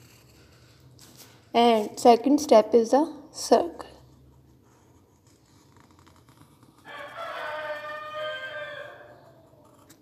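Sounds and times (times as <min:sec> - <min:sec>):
rooster crowing: 0:06.8 - 0:09.8.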